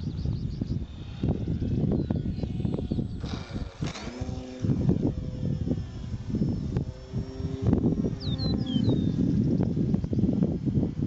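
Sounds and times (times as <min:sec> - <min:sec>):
model airplane motor whine: 0:00.0 - 0:11.0
wind buffeting microphone: 0:00.0 - 0:11.0.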